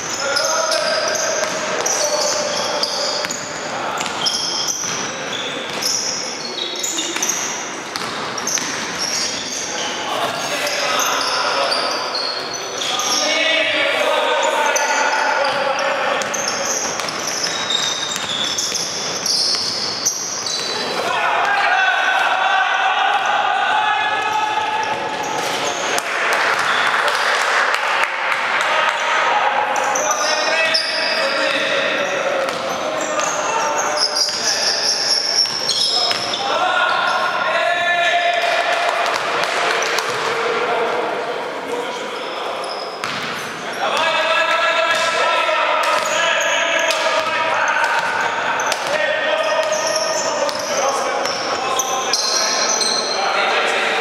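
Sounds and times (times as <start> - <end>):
basketball bouncing on gym floor: 0.7 - 2.6, 7.1 - 9.2, 16.2 - 19.9, 32.4 - 33.3, 35.4 - 36.4, 43.0 - 43.4, 47.0 - 49.0.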